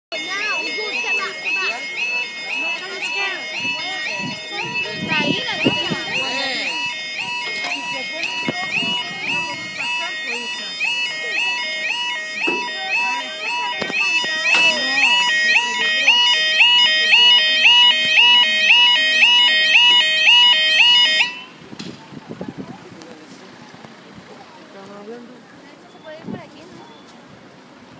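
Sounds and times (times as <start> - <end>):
level crossing warble alarm: 0.1 - 21.6.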